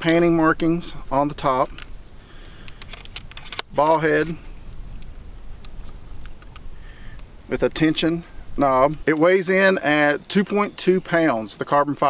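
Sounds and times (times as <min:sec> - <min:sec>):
steady low rumble: 0:00.0 - 0:09.2.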